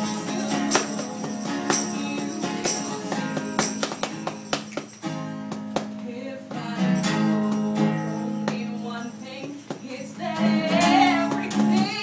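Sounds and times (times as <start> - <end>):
woman singing: 0.0 - 3.9, 5.1 - 12.0
strummed acoustic guitar: 0.0 - 12.0.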